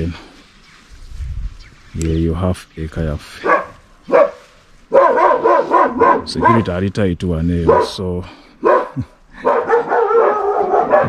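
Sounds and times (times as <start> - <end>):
dog crying: 3.4 - 6.7, 8.6 - 11.0.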